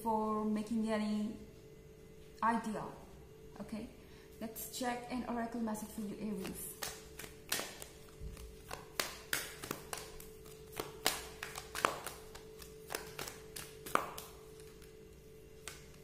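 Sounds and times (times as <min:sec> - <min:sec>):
cards being shuffled: 0:06.3 - 0:16.0.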